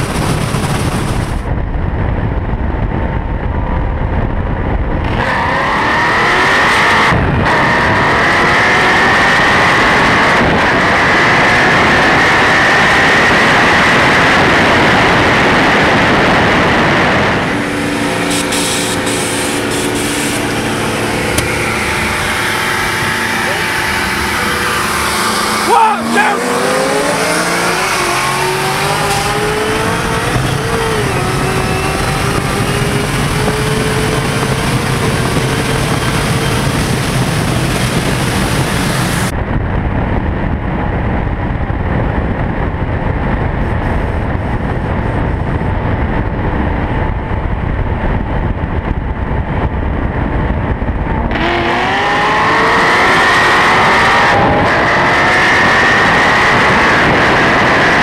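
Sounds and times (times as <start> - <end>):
deep muffled engine rumble: 0.0 - 5.0, 16.2 - 25.7
rising engine whines: 4.5 - 39.3, 50.8 - 58.0
race car engines accelerating: 5.0 - 39.3, 50.8 - 58.0.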